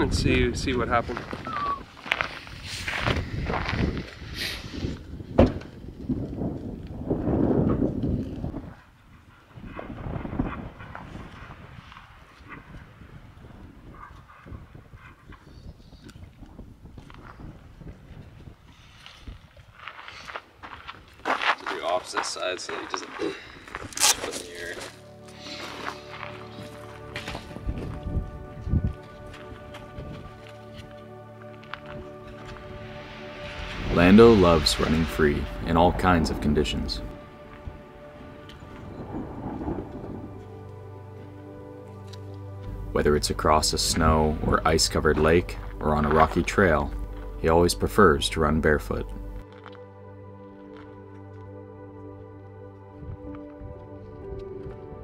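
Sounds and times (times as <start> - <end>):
background music with held notes: 24.0 - 55.0.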